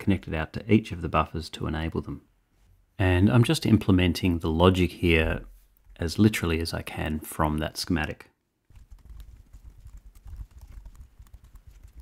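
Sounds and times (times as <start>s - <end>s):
keyboard typing: 8.7s - 12.0s.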